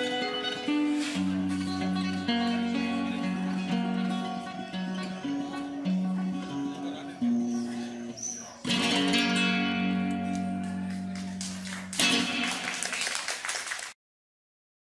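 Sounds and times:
classical guitar plucked and strummed: 0.0s - 13.0s.

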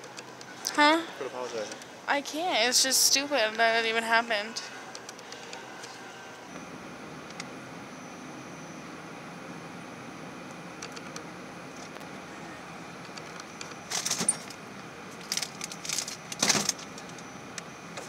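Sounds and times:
refrigerated cases and ventilation hum: 0.0s - 18.0s.

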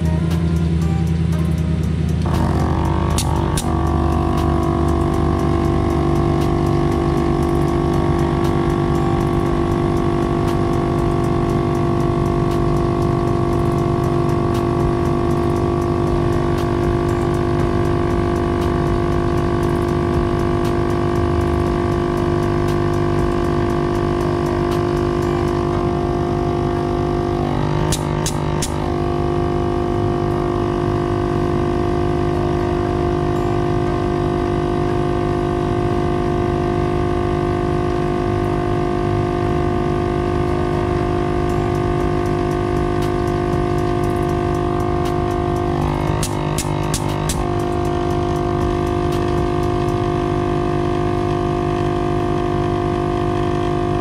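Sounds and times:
air compressor droning hum: 0.0s - 54.0s
sharp clicks: 41.4s - 50.1s.

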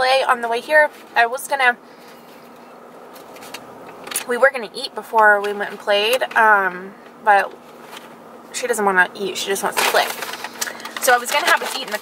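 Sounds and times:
car cabin hum: 2.6s - 10.3s.

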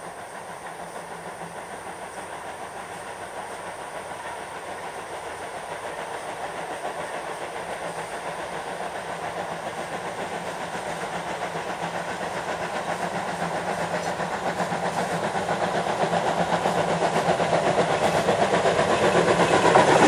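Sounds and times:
hiss of steam: 0.0s - 20.0s
steam locomotive exhaust beating: 0.0s - 20.0s.

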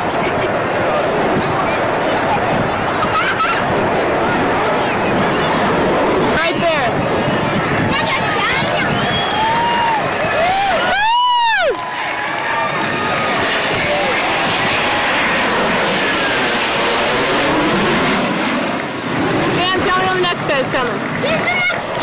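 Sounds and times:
jet flying over: 0.0s - 22.0s.

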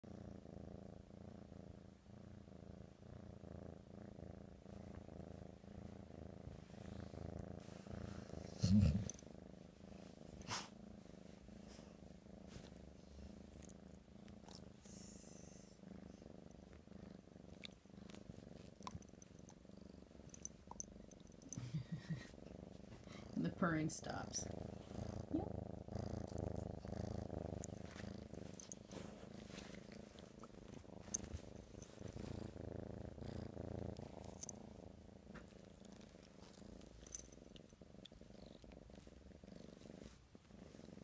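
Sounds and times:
kitten purring: 0.0s - 41.0s
person laughing: 21.6s - 22.4s.

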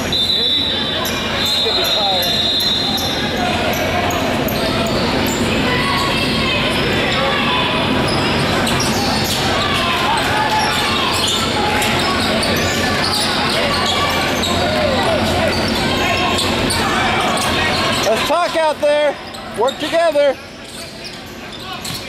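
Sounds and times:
mix of voices: 0.0s - 22.0s.

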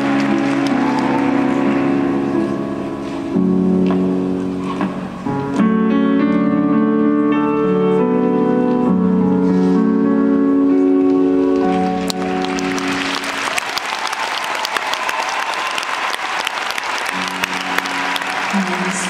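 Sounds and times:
large crowd applause: 0.0s - 2.6s, 11.5s - 19.0s.

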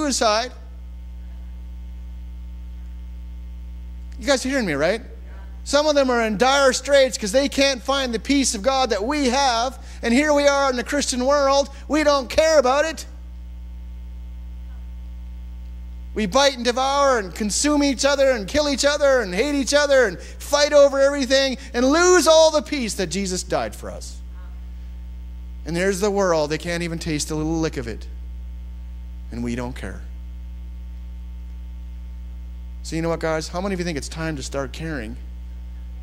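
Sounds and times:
man's voice: 0.0s - 0.6s, 4.2s - 13.2s, 16.2s - 24.2s, 25.7s - 28.1s, 29.3s - 30.1s, 32.8s - 35.2s
electrical mains hum: 0.0s - 36.0s.

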